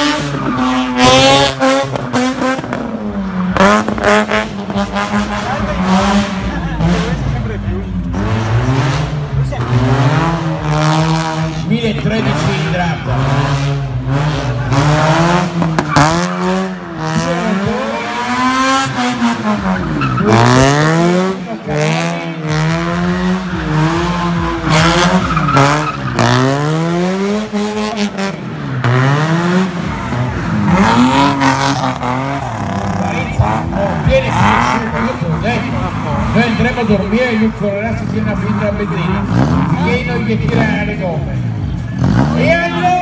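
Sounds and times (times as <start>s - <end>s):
car engine revving: 0.0s - 43.0s.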